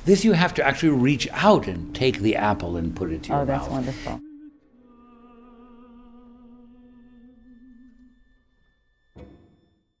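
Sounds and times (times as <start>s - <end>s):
held note with vibrato: 0.8s - 8.7s.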